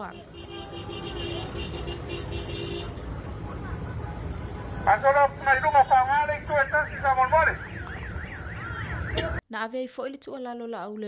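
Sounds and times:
car horn beeping: 0.0s - 3.1s
passing vehicles rumble: 0.0s - 9.4s
wind: 0.0s - 10.9s.

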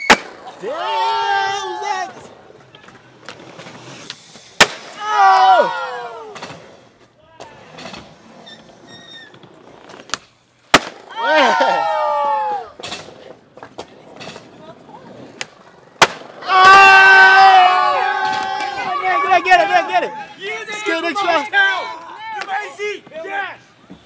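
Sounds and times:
onlookers shouting: 0.0s - 2.3s, 5.0s - 6.4s, 11.1s - 12.8s, 16.4s - 23.6s.

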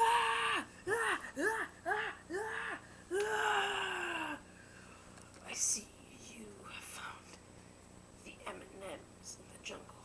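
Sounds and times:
person whispering: 5.4s - 7.4s.

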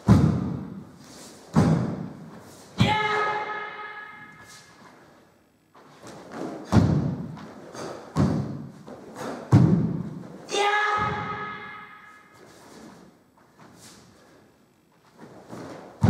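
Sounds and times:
person shouting: 2.8s - 4.5s, 10.5s - 12.2s
bare feet striking wooden floor: 5.8s - 10.3s.

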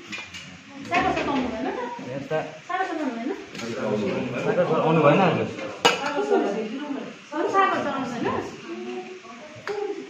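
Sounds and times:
people talking: 0.7s - 10.0s.

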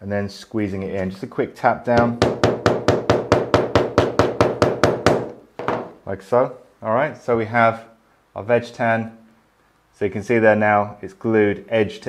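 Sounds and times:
mallet tapping leather: 1.9s - 6.0s.

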